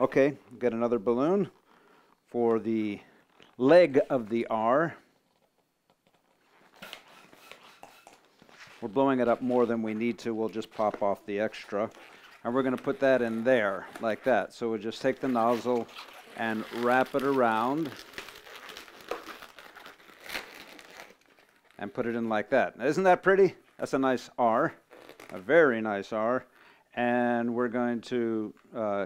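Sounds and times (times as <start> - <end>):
rubbery balloon handling: 5.0 - 21.9, 24.7 - 25.8
hand pump air puffs: 6.7 - 8.8.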